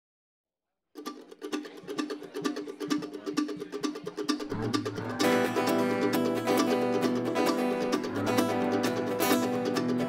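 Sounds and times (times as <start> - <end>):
bluegrass band playing: 1.0 - 10.0
fast picked acoustic string instrument: 1.0 - 10.0.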